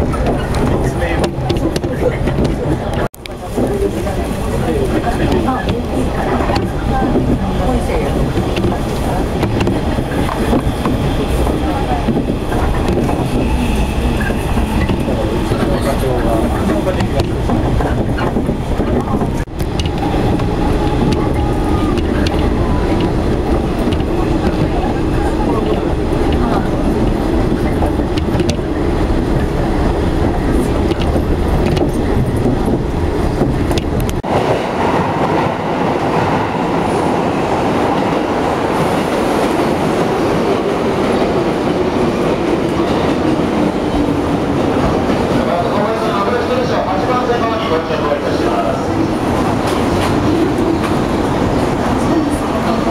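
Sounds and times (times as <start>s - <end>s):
station platform ambience: 0.0s - 52.9s
train wheels rumbling on rails: 0.0s - 52.9s.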